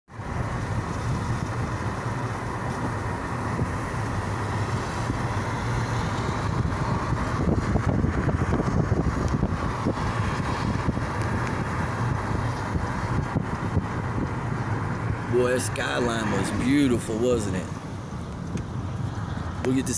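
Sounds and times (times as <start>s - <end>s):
car road and engine noise: 0.1s - 19.9s
wind buffeting microphone: 0.2s - 19.9s.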